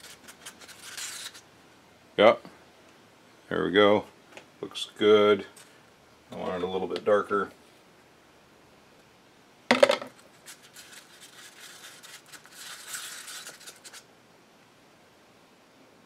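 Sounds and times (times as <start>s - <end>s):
stir stick scraping in a cup: 10.4s - 14.0s.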